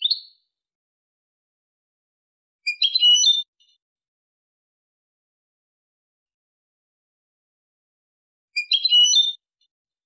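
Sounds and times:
goldfinch singing: 8.6s - 9.4s.

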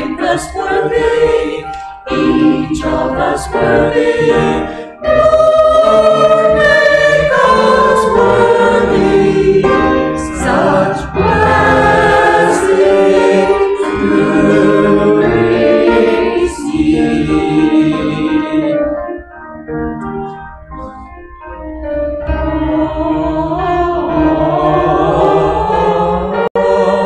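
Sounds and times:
church choir singing: 0.0s - 19.2s, 19.9s - 27.0s.

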